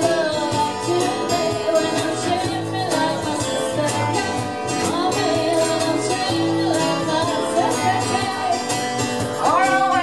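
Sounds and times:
person singing: 0.0s - 10.0s
strummed guitar: 0.0s - 10.0s.

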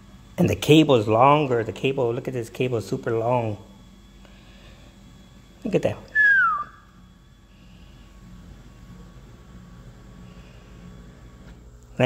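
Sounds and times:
man whistling falling note: 6.1s - 7.0s.

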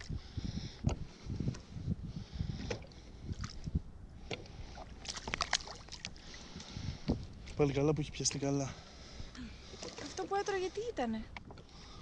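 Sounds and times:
wind buffeting microphone: 0.0s - 5.4s, 6.0s - 8.4s
water sloshing around kayak: 0.8s - 12.0s
fish thrashing in water: 4.8s - 6.4s
sharp splashes: 5.0s - 6.2s.

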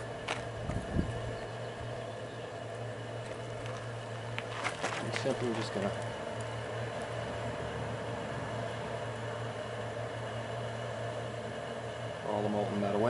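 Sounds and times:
electric blower motor humming: 0.0s - 13.0s.

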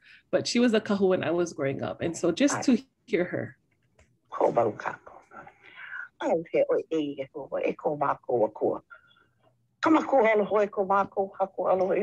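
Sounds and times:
elderly woman speaking: 0.4s - 3.5s, 4.3s - 8.9s, 9.8s - 12.0s.

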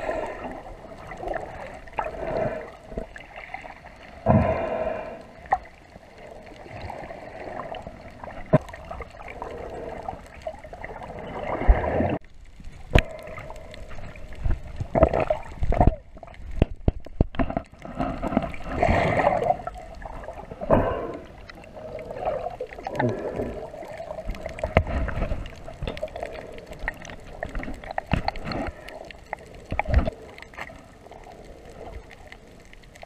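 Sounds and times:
underwater water movement: 0.0s - 33.0s
rush of water: 12.8s - 33.0s.

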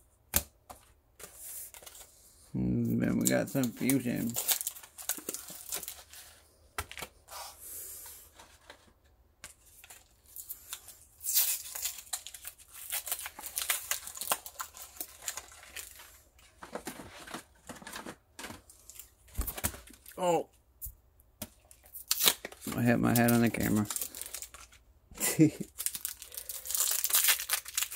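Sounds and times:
foil wrapper tearing and crinkling: 3.2s - 6.1s, 9.8s - 16.2s, 21.9s - 24.8s, 25.6s - 27.9s.

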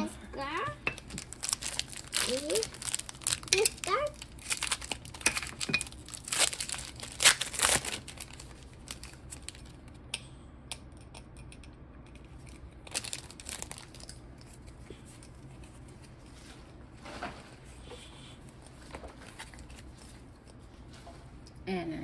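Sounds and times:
wrapper rustle: 1.0s - 9.8s, 12.9s - 14.8s
foil wrapper crinkling and tearing: 1.0s - 10.0s, 12.5s - 14.7s.

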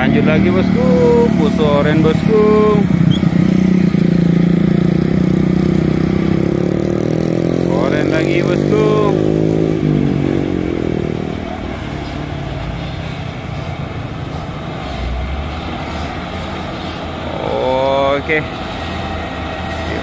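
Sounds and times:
motorcycles passing: 0.0s - 20.0s
truck diesel engine running: 0.0s - 20.0s.

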